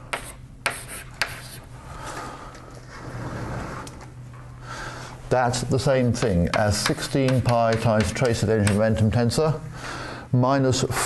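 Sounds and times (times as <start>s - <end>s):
chalk scratching: 0.1s - 1.6s, 5.9s - 9.0s
chalk tapping on blackboard: 0.1s - 1.6s, 6.0s - 9.0s.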